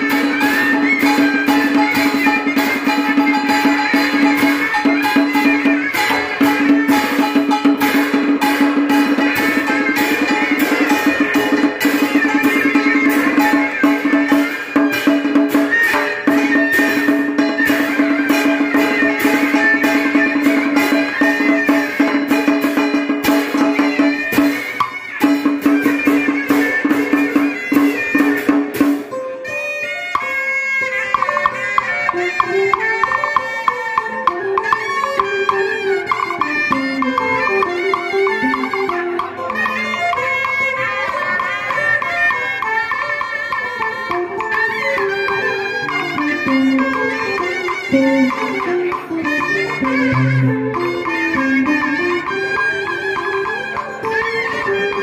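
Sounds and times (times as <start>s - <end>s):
cymbal: 0.0s - 31.7s
held melodic note: 0.0s - 55.0s
two-string fiddle melody: 0.0s - 55.0s
electric guitar: 43.6s - 55.0s.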